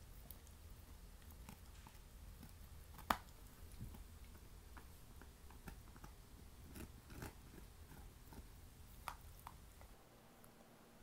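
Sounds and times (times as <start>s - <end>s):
dog gnawing on bone: 0.0s - 9.9s.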